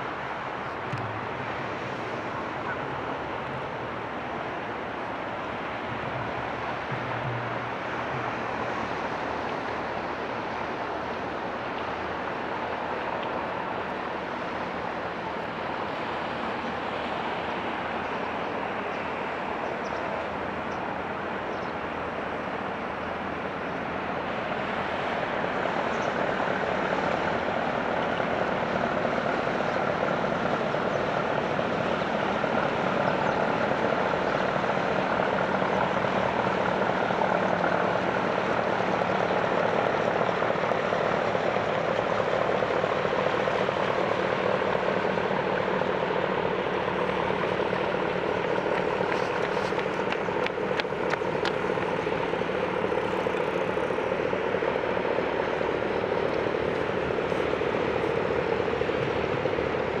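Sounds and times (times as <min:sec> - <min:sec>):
ship engine drone: 0:00.0 - 1:00.0.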